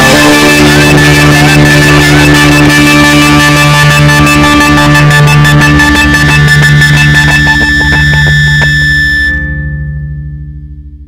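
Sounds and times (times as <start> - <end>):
rock band playing: 0.0 - 9.2
low chord ringing: 0.0 - 11.0.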